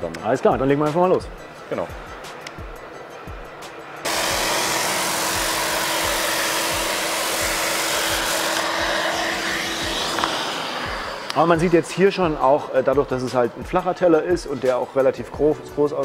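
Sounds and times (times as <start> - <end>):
sander motor hum: 4.0 - 14.3
orbital sander sanding wood: 4.0 - 14.8.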